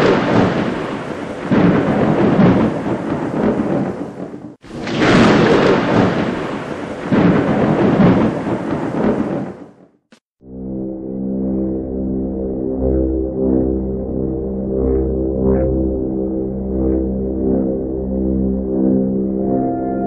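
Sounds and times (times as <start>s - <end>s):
thunder rolling: 0.0s - 9.8s.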